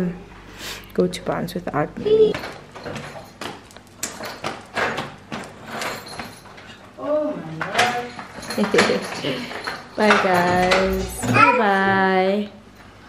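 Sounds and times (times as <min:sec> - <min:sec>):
child calling out: 0:11.2 - 0:11.9.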